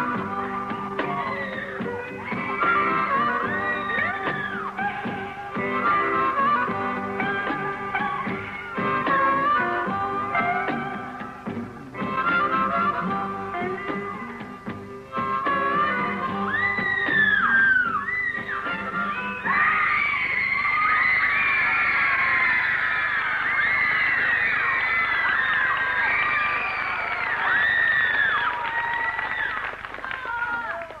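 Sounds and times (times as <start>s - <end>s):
audience screaming and cheering: 0.0s - 11.5s, 15.7s - 31.0s
blues band with harmonica: 0.0s - 21.6s.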